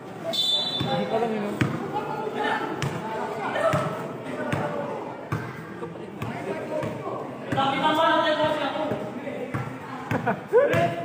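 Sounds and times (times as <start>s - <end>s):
onlookers talking: 0.0s - 11.0s.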